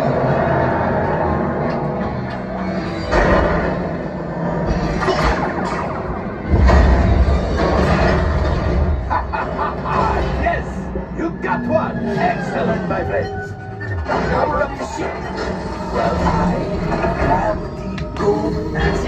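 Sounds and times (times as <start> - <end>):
dramatic music score: 0.0 - 19.0.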